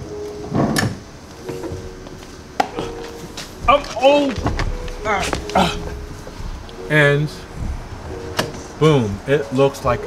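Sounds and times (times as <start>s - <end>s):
person speaking: 2.8s - 7.6s.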